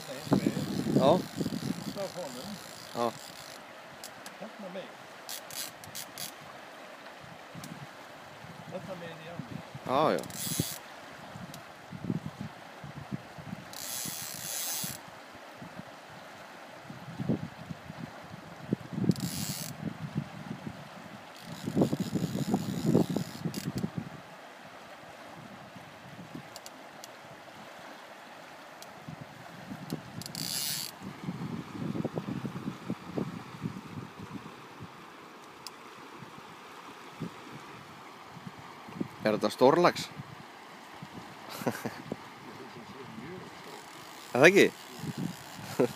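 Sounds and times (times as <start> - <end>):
river flowing: 0.0 - 45.9
fishing reel ratchet clicking: 0.2 - 4.2, 5.3 - 6.4, 10.2 - 10.8, 13.7 - 15.0, 19.1 - 19.8, 30.2 - 30.9, 43.6 - 45.7.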